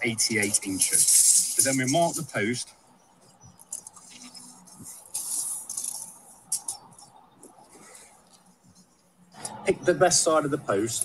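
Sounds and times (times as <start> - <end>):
tape measure hissing rustle: 0.2 - 2.4, 3.7 - 6.8.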